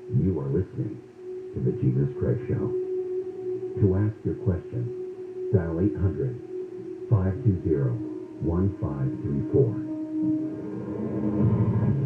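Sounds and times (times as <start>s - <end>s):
radio sounder of sustained tones: 0.0s - 12.0s.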